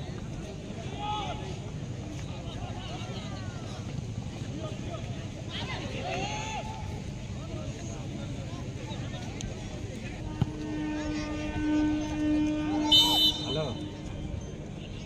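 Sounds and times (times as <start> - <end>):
distant voices and shouts: 0.0 - 15.0.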